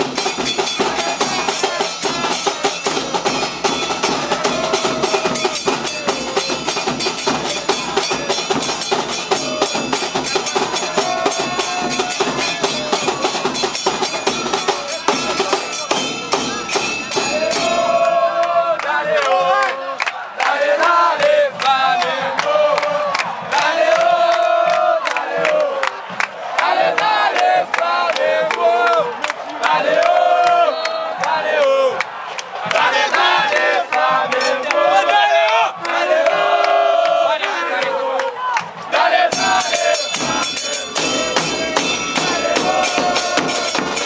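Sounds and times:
bass drums beating: 0.0 - 18.2, 38.6 - 44.0
cymbals struck: 0.0 - 18.2, 39.3 - 44.0
crowd chanting a song: 0.0 - 44.0.

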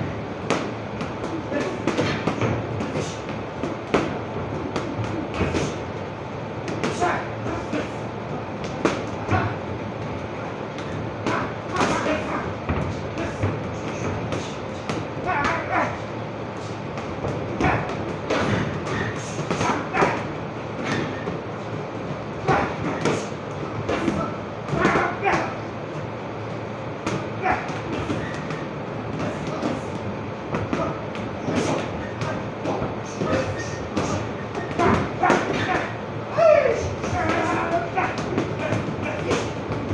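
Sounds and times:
steady background noise: 0.0 - 39.9.

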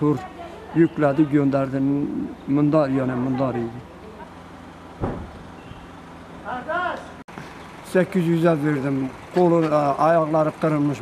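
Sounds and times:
engine idling hum: 0.0 - 11.0
short thump: 5.0 - 5.5.

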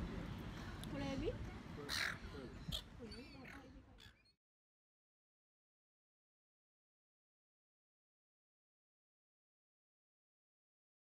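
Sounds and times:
gulls calling and squawking: 1.8 - 4.4.

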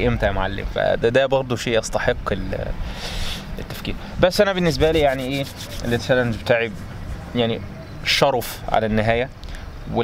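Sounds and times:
man speaking: 4.3 - 9.3.

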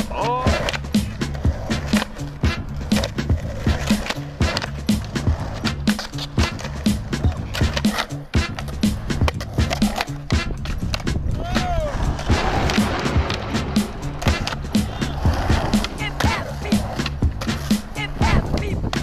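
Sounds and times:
music with steady beat: 0.0 - 19.0
skateboard clacks: 0.0 - 19.0
skateboards rolling on concrete: 0.0 - 19.0.

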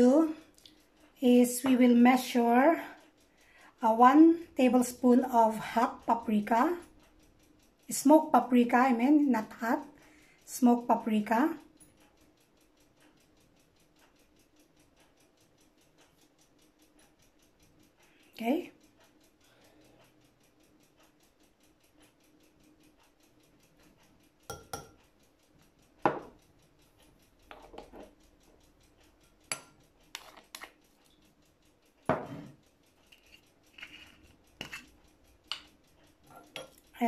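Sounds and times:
clinks and taps of kitchenware: 24.5 - 25.0, 26.0 - 26.4, 27.5 - 28.1, 36.3 - 36.8.

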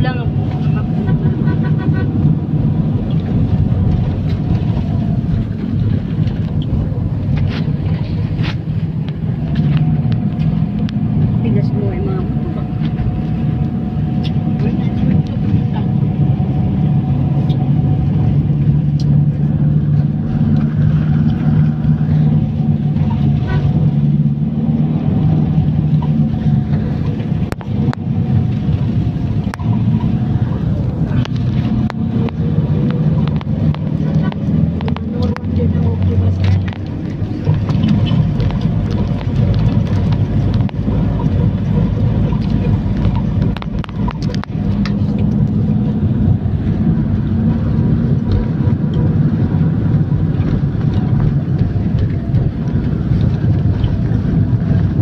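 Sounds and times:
vehicle engine hum and road noise: 0.0 - 55.0
clicks and rattles: 25.9 - 45.6.

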